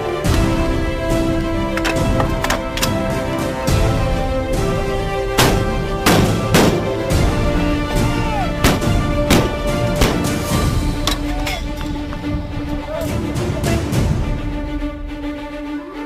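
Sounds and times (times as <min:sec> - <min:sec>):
music track: 0:00.0 - 0:16.0
artillery guns firing: 0:05.3 - 0:07.2, 0:08.6 - 0:11.7.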